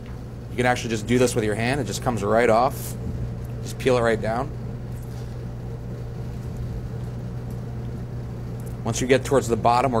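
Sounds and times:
low machinery hum: 0.0 - 10.0.

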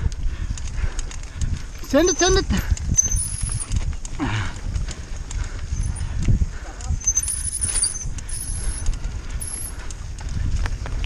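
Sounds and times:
mountain bike rattling and knocking: 0.0 - 11.0
wind and trail rumble: 0.0 - 11.0.

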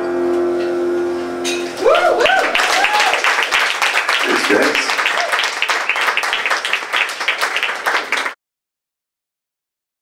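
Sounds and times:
piano and guitar chord ringing: 0.0 - 1.8
audience whooping and cheering: 1.8 - 8.3.

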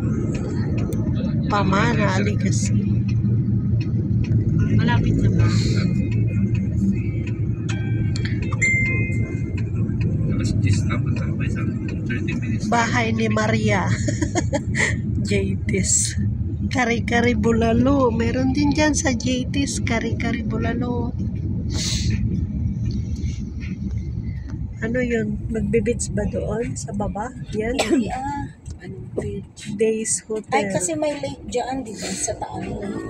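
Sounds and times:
car driving rumble from cabin: 0.0 - 33.0.

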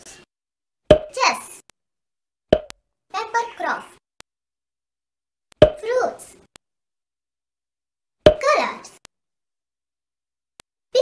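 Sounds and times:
cartoon pop sound effect: 0.9 - 1.2, 2.5 - 2.8, 5.6 - 5.8, 8.2 - 8.5
child speaking: 1.1 - 1.6, 3.1 - 4.0, 5.8 - 6.5, 8.4 - 9.0.

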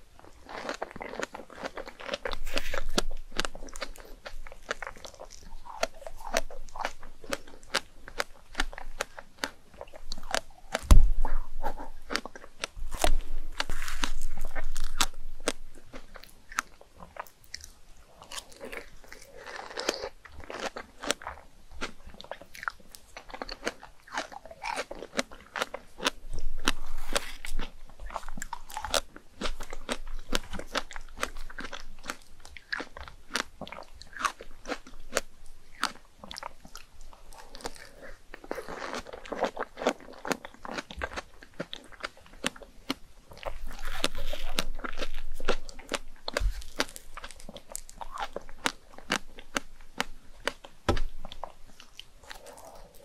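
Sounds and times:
wet chewing and squelches: 0.0 - 53.0
biting into strawberries: 0.4 - 35.2, 35.8 - 53.0.

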